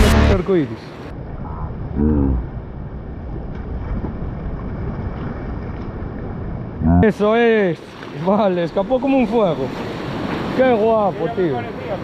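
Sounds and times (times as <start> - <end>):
background music: 0.0 - 0.4
wind: 0.0 - 12.0
surf washing against rocks: 7.2 - 12.0.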